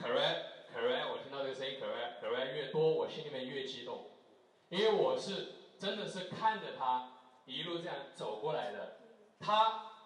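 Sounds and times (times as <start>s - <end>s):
person talking: 0.0s - 4.0s, 4.7s - 9.7s.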